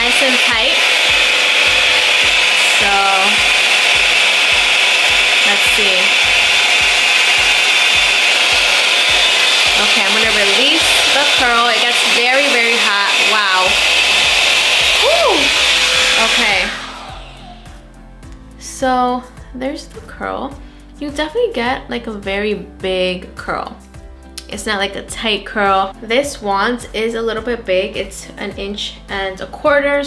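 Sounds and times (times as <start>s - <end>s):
hot-air curling wand blowing: 0.0s - 17.9s.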